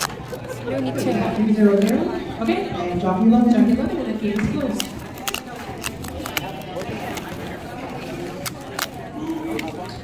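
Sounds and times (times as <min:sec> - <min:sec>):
paper tabs tearing: 0:04.7 - 0:09.8.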